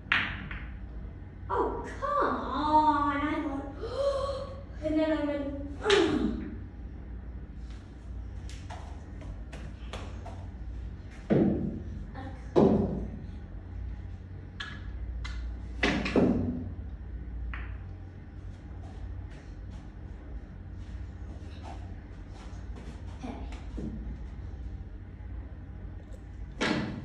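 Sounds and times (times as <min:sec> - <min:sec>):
billiard balls hitting each other: 0:00.0 - 0:00.8, 0:11.1 - 0:11.9, 0:12.5 - 0:13.2, 0:14.6 - 0:16.7, 0:17.5 - 0:17.9, 0:26.6 - 0:27.0
cue striking billiard balls: 0:00.0 - 0:00.8, 0:11.2 - 0:11.9, 0:12.5 - 0:13.2, 0:15.8 - 0:16.7, 0:17.5 - 0:17.8
low steady hum: 0:00.0 - 0:27.0.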